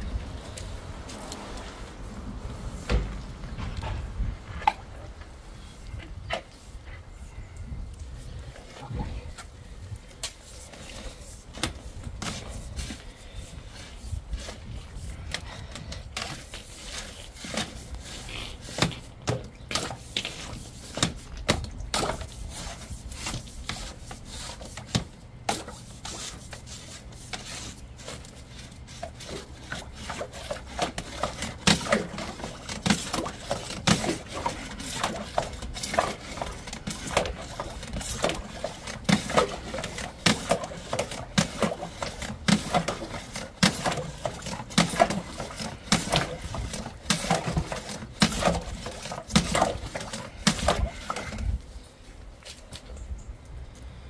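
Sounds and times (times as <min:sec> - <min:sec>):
drain rods knocking and scraping: 0:02.3 - 0:07.2, 0:10.2 - 0:51.6.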